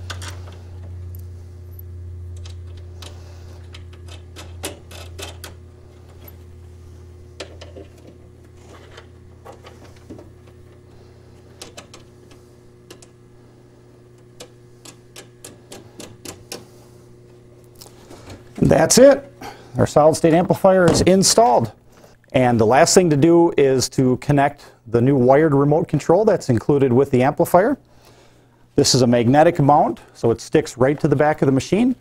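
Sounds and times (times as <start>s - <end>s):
low hum: 0.0s - 24.0s.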